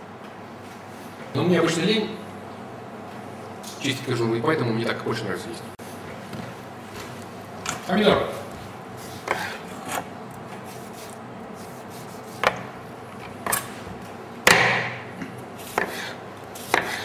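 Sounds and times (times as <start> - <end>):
knife cutting on cutting board: 9.1 - 12.7, 15.6 - 17.0.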